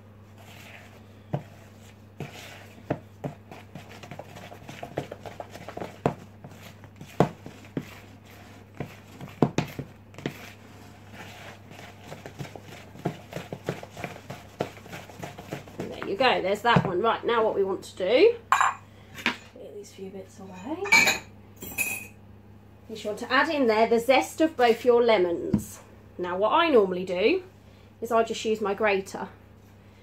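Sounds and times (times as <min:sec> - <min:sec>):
wet scraping of batter: 0:00.2 - 0:16.3
wooden spoon knocking plastic bowl: 0:02.8 - 0:08.1, 0:08.7 - 0:10.5.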